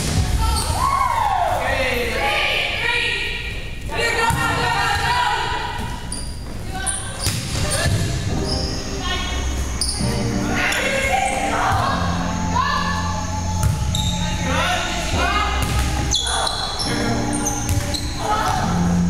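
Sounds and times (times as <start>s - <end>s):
players' voices: 0.1s - 19.0s
volleyballs struck and bouncing: 7.2s - 8.2s, 15.6s - 16.3s, 17.6s - 18.7s
background music: 7.8s - 19.0s.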